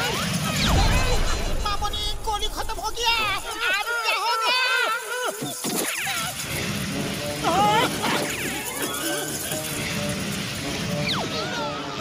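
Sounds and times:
falling swoosh: 0.5s - 4.0s
low rumbling sound effect: 0.6s - 4.0s
background music: 6.4s - 12.0s.

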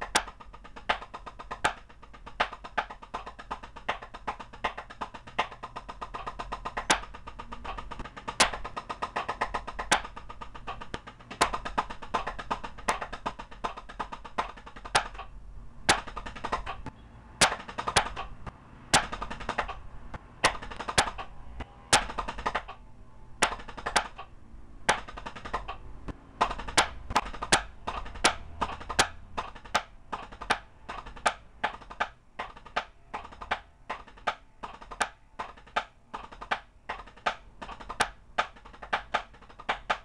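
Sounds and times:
drumsticks on a practice pad: 0.0s - 40.0s.

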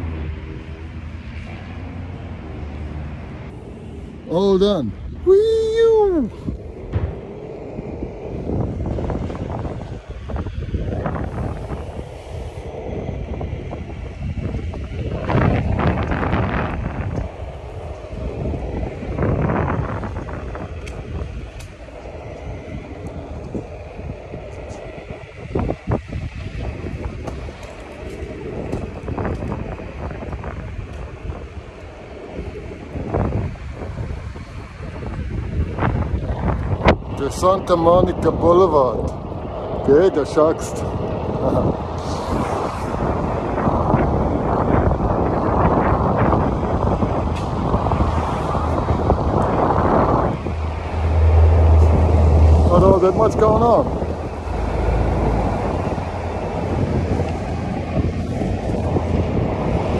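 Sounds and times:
wind buffeting a microphone: 0.0s - 59.9s.

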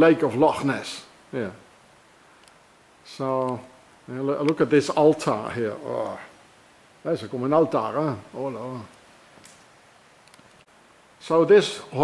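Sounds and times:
faint hiss: 0.0s - 12.0s
faint ticks: 2.4s - 2.6s.

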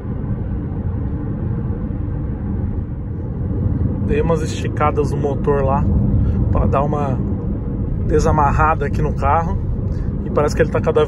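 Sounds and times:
faint engine hum: 0.0s - 11.0s
road and tyre rumble: 0.0s - 11.0s.

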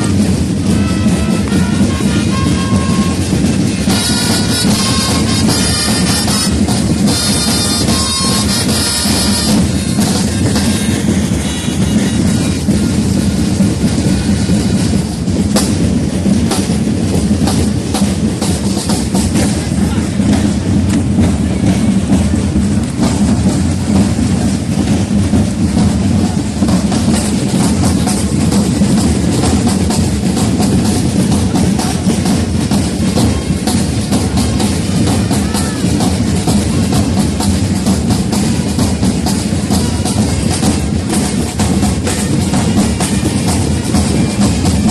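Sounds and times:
held wind instrument note: 0.0s - 12.7s
marching drums: 0.0s - 44.9s.

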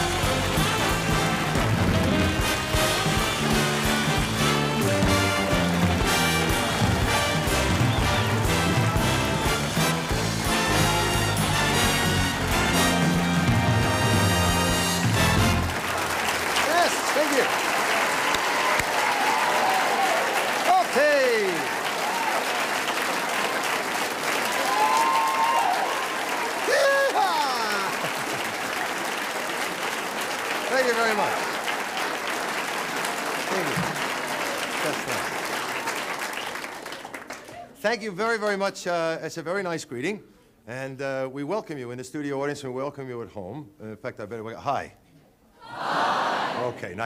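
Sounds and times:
theme music: 0.0s - 16.9s
audience applauding: 0.0s - 37.8s
whoops and shouts: 24.5s - 27.9s.

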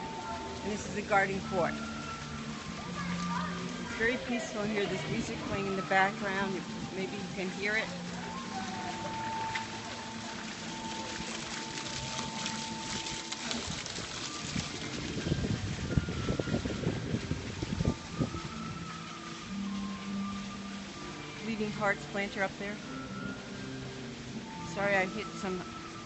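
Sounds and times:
fountain splashing: 0.0s - 26.0s
soft background music: 0.0s - 26.0s.

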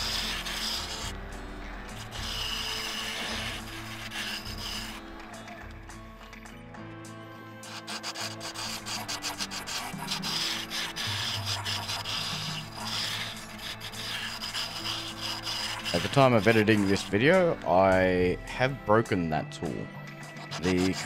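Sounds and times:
turning tool scraping wood: 0.0s - 5.2s, 7.6s - 17.7s, 20.2s - 21.0s
wood lathe humming: 1.8s - 5.2s, 7.6s - 17.2s.

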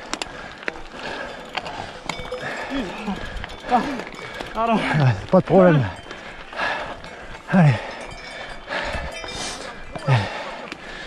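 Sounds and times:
bike tyres crunching on gravel: 0.0s - 10.9s.

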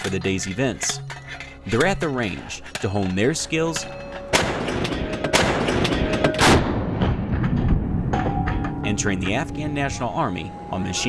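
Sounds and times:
vehicle gun firing blast: 4.3s - 8.1s.

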